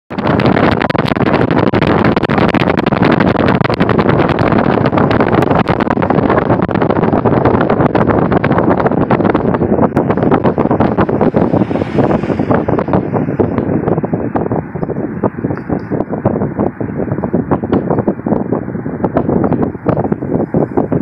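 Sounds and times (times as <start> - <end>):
car road noise: 0.1 - 21.0
wind buffeting microphone: 0.1 - 21.0.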